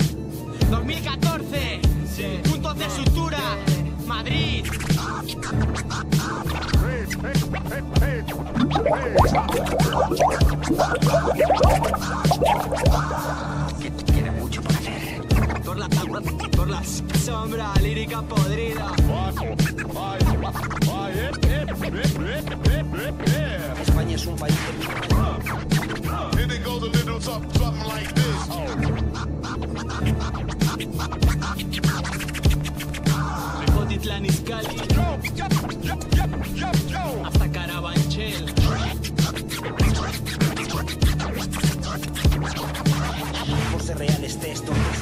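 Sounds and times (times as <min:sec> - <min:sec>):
person rapping: 0:00.7 - 0:04.8, 0:06.7 - 0:25.4, 0:26.0 - 0:28.8, 0:33.4 - 0:39.0, 0:43.7 - 0:44.8
hip hop beat: 0:02.6 - 0:44.7
turntable scratching: 0:04.6 - 0:13.9, 0:19.4 - 0:22.8, 0:24.6 - 0:26.0, 0:27.7 - 0:33.6, 0:34.7 - 0:36.5, 0:38.3 - 0:44.3.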